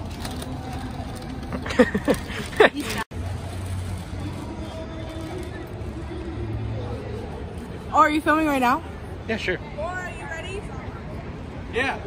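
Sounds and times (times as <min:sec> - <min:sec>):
faint crowd voices: 0:00.0 - 0:12.0
road traffic hum: 0:00.0 - 0:12.0.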